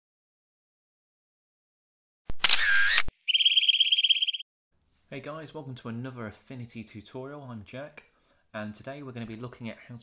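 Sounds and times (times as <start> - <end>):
camera shutter click: 2.3 - 3.1.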